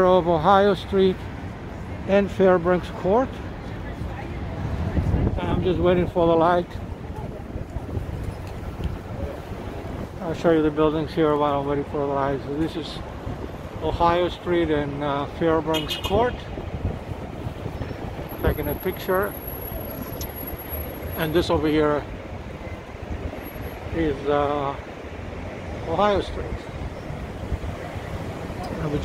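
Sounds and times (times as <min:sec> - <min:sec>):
city street traffic: 0:00.0 - 0:29.0
wind rumbling on microphone: 0:03.9 - 0:11.0, 0:15.8 - 0:24.2, 0:25.0 - 0:29.0.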